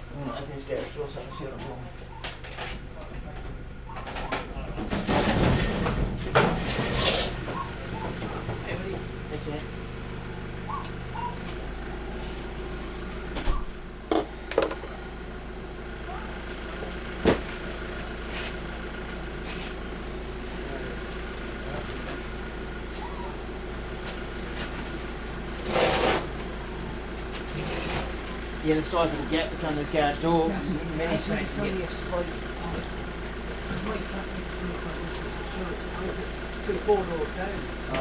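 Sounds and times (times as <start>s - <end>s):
steady low hum: 0.0s - 38.0s
objects knocking and clunking: 14.1s - 14.9s.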